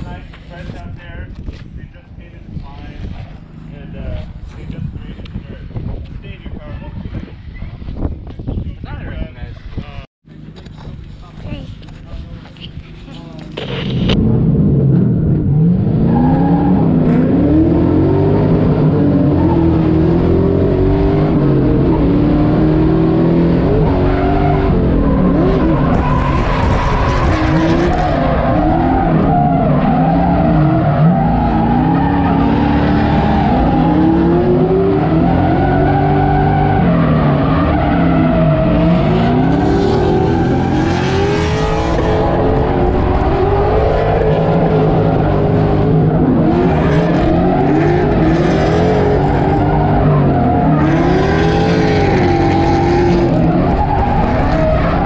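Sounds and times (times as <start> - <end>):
car engine revving: 13.5 - 55.0.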